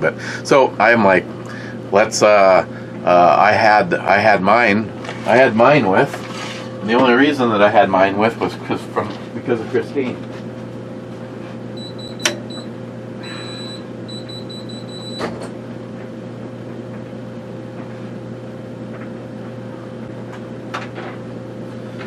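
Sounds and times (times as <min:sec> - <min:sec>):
steady room hum: 0:00.0 - 0:22.0.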